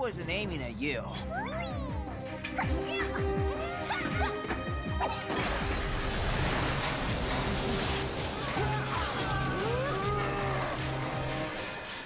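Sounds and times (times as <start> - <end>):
background music with held notes: 0.0 - 5.9.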